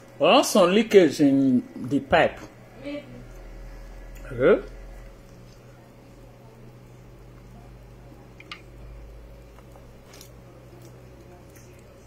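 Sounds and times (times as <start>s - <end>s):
steady low hum: 0.0s - 12.0s
person eating and chewing: 9.4s - 12.0s.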